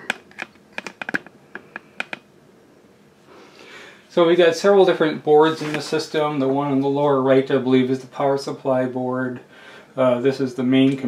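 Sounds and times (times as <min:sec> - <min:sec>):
hands handling objects clicking: 0:00.0 - 0:02.2
faint hiss: 0:03.0 - 0:11.0.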